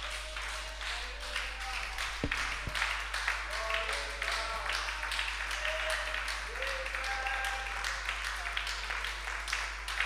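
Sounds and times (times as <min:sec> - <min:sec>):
congregation clapping: 0:00.0 - 0:10.0.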